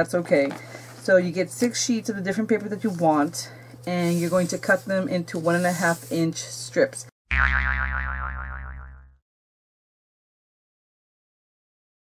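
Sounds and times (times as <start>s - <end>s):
cartoon boing: 7.3s - 9.2s.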